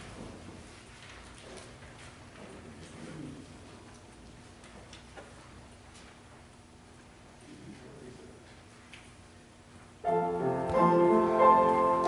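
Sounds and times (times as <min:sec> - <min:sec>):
low steady hum: 0:05.3 - 0:12.0.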